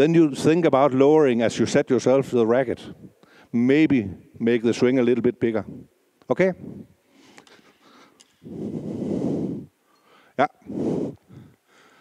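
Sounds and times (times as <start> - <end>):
man speaking: 3.6 - 6.8, 10.4 - 10.7
breath blowing on microphone: 6.6 - 9.8, 10.6 - 11.6.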